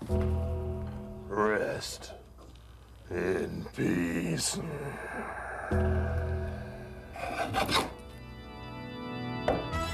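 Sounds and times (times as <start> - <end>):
organ music: 0.0 - 1.5, 5.8 - 9.9.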